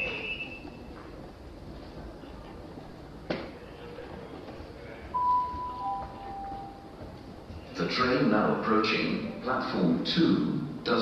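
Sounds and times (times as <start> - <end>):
two-note public-address chime: 5.2 - 6.9.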